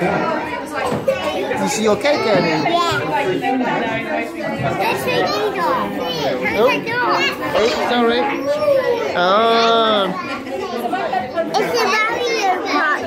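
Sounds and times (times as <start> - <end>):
children chattering and calling: 0.0 - 13.0.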